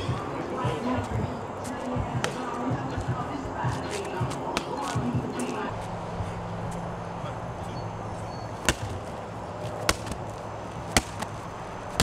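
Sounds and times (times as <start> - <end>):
medicine ball thudding on concrete: 1.9 - 5.3, 8.6 - 12.0.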